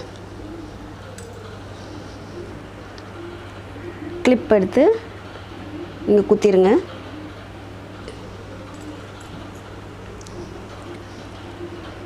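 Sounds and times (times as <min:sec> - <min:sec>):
bird cooing softly: 0:00.0 - 0:12.0
steady low hum: 0:00.0 - 0:12.0.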